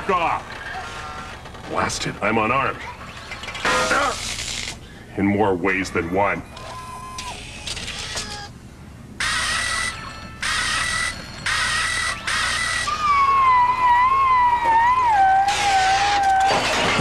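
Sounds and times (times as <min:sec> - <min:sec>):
wavering whine sinking in pitch: 0:11.8 - 0:16.7.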